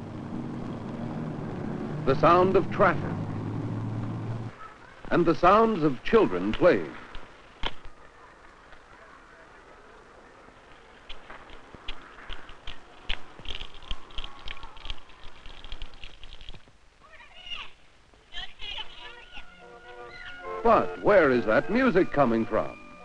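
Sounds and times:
children calling and shouting: 4.4s - 5.9s, 18.7s - 23.0s
barrel organ playing a tune: 19.5s - 23.0s.

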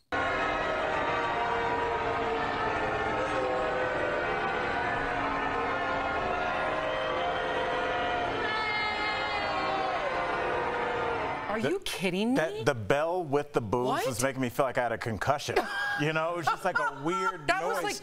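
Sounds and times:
crowd booing: 0.0s - 11.7s.

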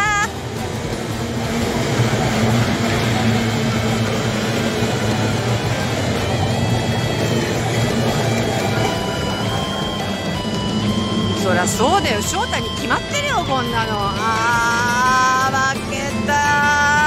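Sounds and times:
held musical tones: 0.0s - 17.0s
outboard engines droning: 0.0s - 17.0s.

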